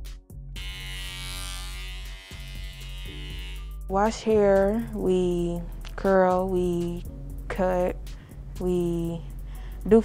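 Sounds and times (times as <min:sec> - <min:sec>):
background music: 0:00.0 - 0:10.0
electric hair clipper buzzing: 0:00.5 - 0:03.9.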